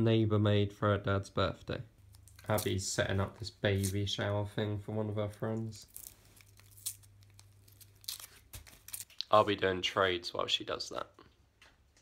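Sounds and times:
plastic wrappers crinkling: 0:02.0 - 0:04.1, 0:05.7 - 0:09.5
plastic bag crackling: 0:05.8 - 0:09.4.

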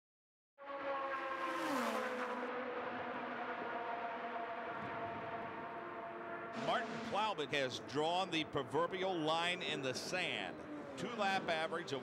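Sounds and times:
race car engine at speed: 0:00.6 - 0:12.0.

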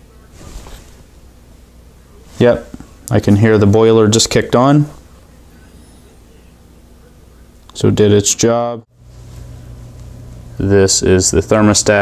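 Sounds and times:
heating boiler humming: 0:00.0 - 0:12.0.

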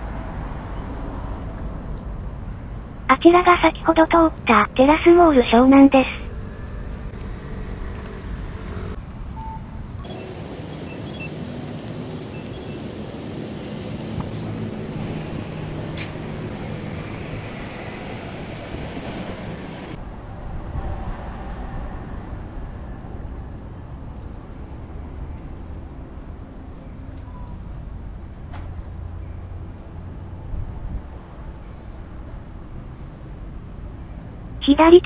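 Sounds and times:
road traffic passing: 0:00.0 - 0:35.0
wind rumble on microphone: 0:09.0 - 0:34.4.

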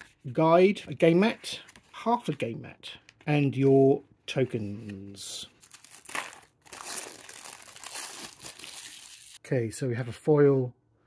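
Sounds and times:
plastic wrapper crinkling: 0:05.6 - 0:09.4.

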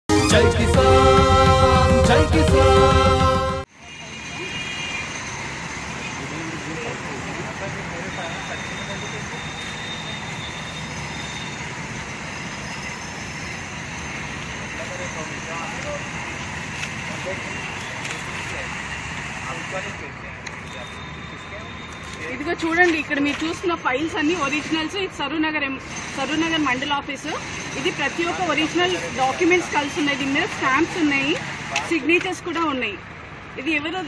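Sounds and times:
outdoor background noise: 0:03.6 - 0:34.0.

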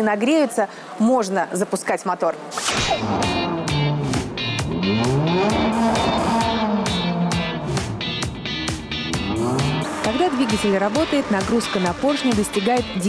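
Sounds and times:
background music with beat: 0:02.8 - 0:13.0
racing car engine revving: 0:02.9 - 0:12.6.

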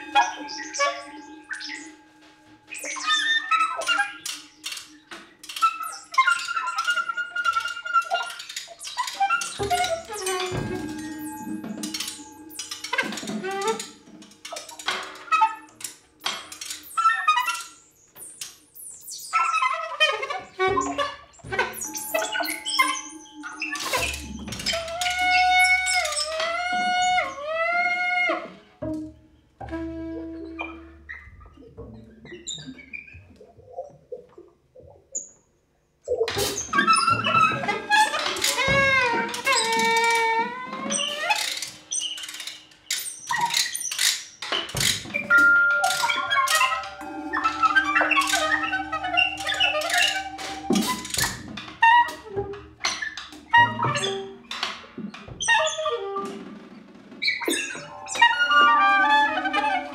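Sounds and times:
squawking high tones: 0:00.0 - 0:04.2, 0:18.9 - 0:27.5, 0:45.2 - 0:52.4, 0:57.4 - 0:59.9
soprano saxophone improvising: 0:19.7 - 0:32.3, 0:45.2 - 0:52.7, 0:57.6 - 0:59.9
held low tone: 0:45.3 - 0:51.2
sustained higher tone: 0:45.3 - 0:51.6.

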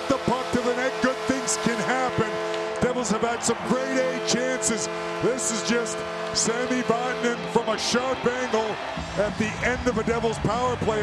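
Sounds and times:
crowd cheering: 0:00.0 - 0:11.0
crowd shouts and whistles: 0:00.0 - 0:11.0
goal horn chord: 0:00.0 - 0:11.0.

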